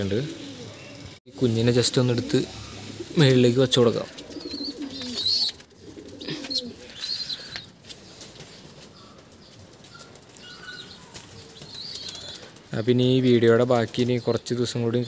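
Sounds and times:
pigeon wings flapping: 11.0s - 12.7s.

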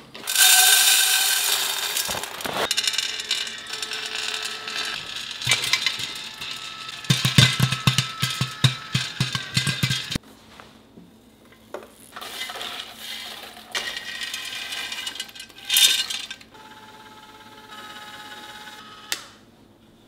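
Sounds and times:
popcorn kernels rattling into pan: 0.2s - 10.2s, 12.2s - 16.5s
popcorn popping under glass lid: 0.2s - 10.2s.

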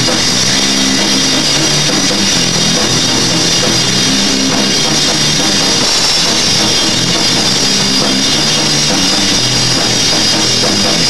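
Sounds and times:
cymbals crashing: 0.0s - 11.0s
live punk rock band: 0.0s - 11.0s.

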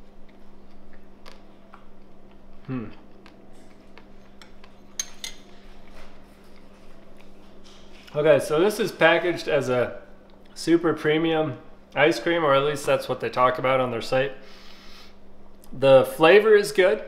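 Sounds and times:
steady low hum: 0.0s - 17.0s
person humming hmm: 2.6s - 3.0s
metal spoon clinking ceramic bowl: 4.4s - 5.5s.

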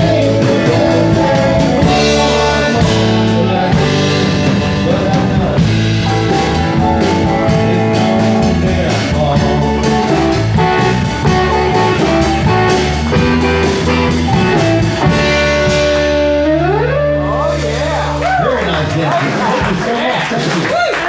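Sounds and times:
live band playing blues-rock: 0.0s - 19.8s
electric and acoustic guitars: 0.0s - 20.6s.

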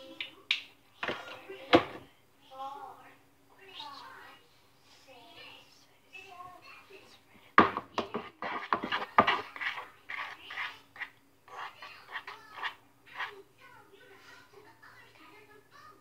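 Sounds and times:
spoon scraping slime in bowl: 8.0s - 13.4s.

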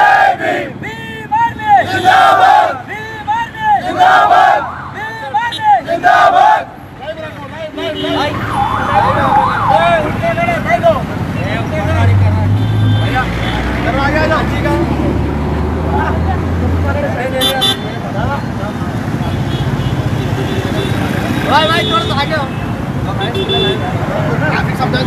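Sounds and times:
traffic: 0.0s - 25.0s
vehicle engine humming: 0.0s - 25.0s
voices: 0.0s - 25.0s
siren yelping: 8.2s - 10.4s.

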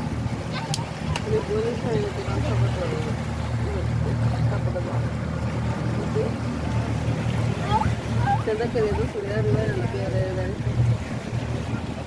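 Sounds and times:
boat motor droning: 0.0s - 12.0s.

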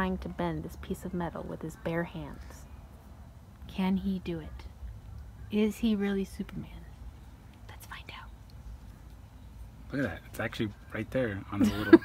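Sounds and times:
person whispering: 7.7s - 8.3s.

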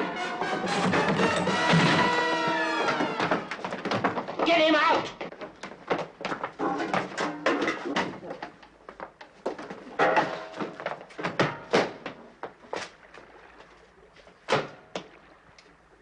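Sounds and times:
thumps and scuffles of fighting: 0.6s - 13.0s.

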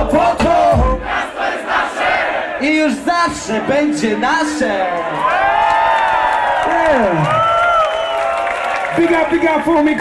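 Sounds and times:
crowd cheering and whooping: 4.9s - 10.0s.

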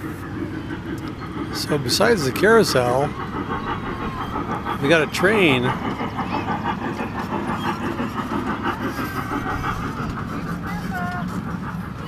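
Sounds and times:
small train motor droning: 0.0s - 12.0s.

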